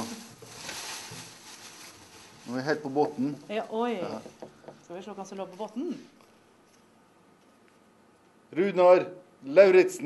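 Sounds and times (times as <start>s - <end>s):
paper rustling: 0.0s - 3.3s.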